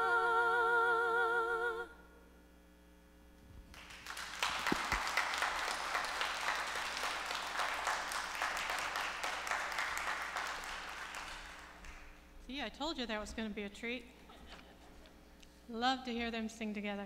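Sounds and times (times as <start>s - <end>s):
congregation applauding: 3.7s - 12.2s.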